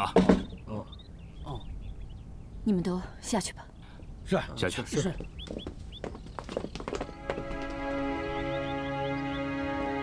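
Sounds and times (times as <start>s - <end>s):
high chirping animal calls: 0.0s - 3.0s, 3.7s - 7.2s, 7.8s - 9.8s
footsteps of soldiers: 5.0s - 8.2s.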